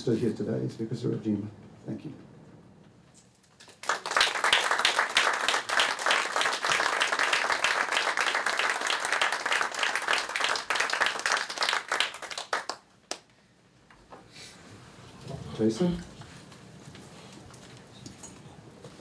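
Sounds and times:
audience applauding: 3.6s - 13.3s.

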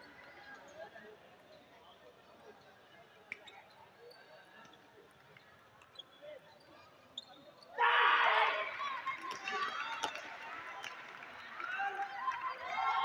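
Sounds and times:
spectators shouting and cheering: 7.8s - 13.0s.

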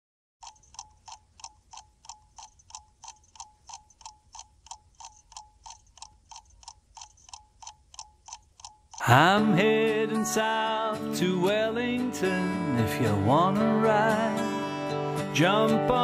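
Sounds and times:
clock-like ticks: 0.4s - 9.8s.

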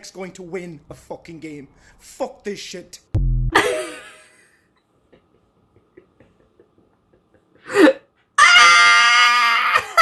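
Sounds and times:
man shrieking with laughter: 7.7s - 10.0s.

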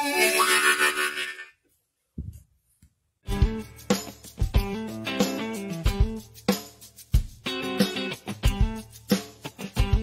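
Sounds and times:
blues harmonica note: 0.0s - 1.6s.

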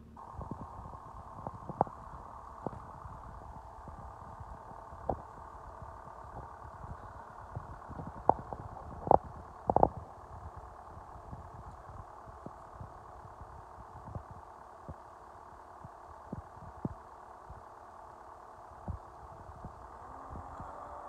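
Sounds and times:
diesel engine idling: 0.0s - 21.0s.

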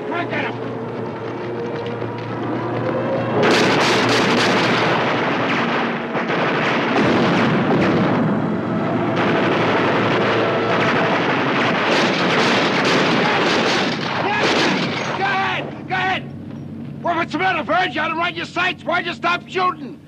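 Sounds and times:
machine-gun fire: 3.4s - 15.1s.

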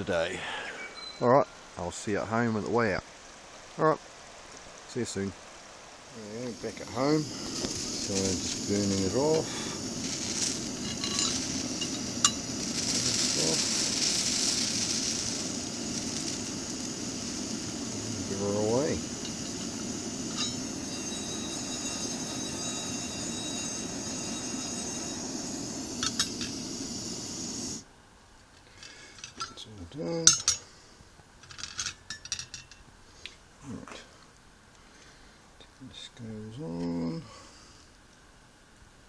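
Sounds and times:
burner hissing: 0.0s - 27.9s
light metallic clinks: 10.8s - 12.5s, 19.1s - 26.7s, 28.8s - 30.7s, 31.4s - 32.9s.

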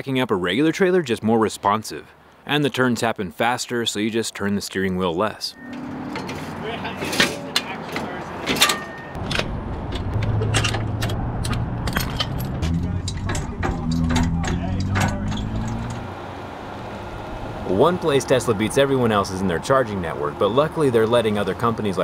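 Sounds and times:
metal chains clinking and rattling: 6.2s - 9.1s, 11.8s - 15.9s
low motor hum: 9.2s - 19.0s.

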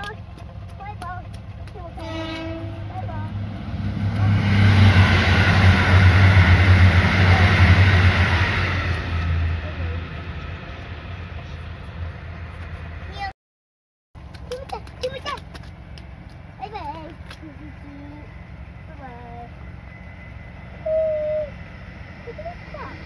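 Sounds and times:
train passing at speed: 0.0s - 13.3s, 14.2s - 23.0s
train horn toot: 2.0s - 3.1s.

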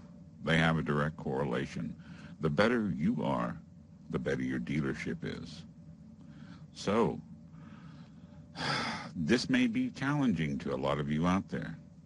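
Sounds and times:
man speaking: 0.4s - 5.6s, 6.8s - 7.2s, 8.7s - 11.8s
man breathing in: 7.5s - 9.1s.

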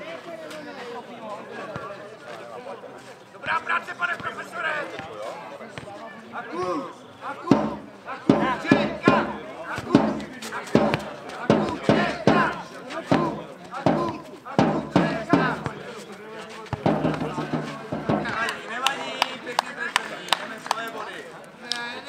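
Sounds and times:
people shouting: 6.5s - 15.7s
ball knocking off feet and heads: 7.5s - 15.9s, 16.7s - 18.6s.

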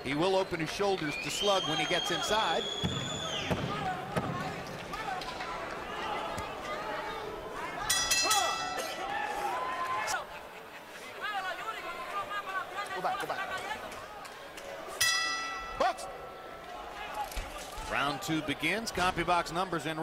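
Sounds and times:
arena crowd noise: 0.0s - 20.0s
boxing bell ringing: 7.9s - 8.9s, 15.0s - 16.3s.

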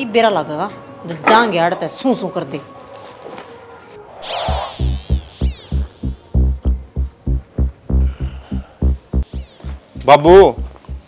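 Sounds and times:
deep pulsing bass beat: 4.5s - 11.0s.

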